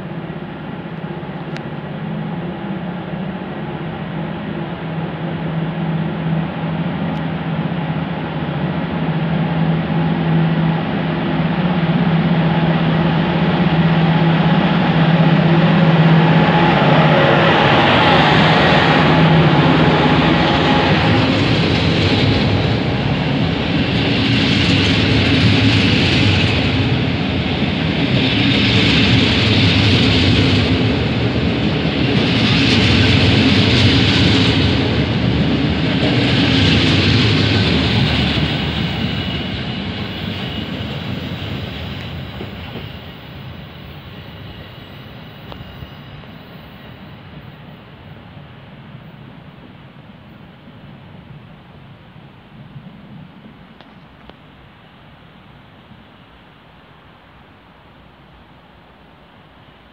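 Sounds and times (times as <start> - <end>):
train wheel rumble: 0.0 - 56.4
electric locomotive hum: 0.0 - 57.4.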